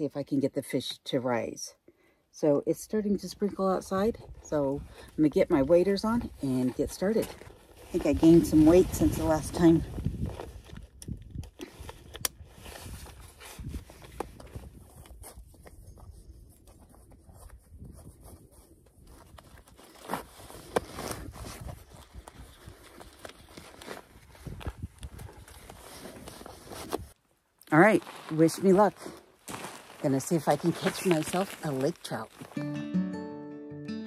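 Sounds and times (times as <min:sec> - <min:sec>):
fabric rustling: 0:27.9 - 0:32.6.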